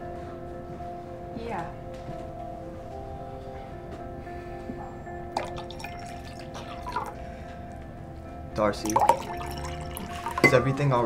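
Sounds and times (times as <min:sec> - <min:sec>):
background music: 0:00.0 - 0:11.0
water pouring into a glass: 0:05.4 - 0:07.2, 0:08.7 - 0:10.7.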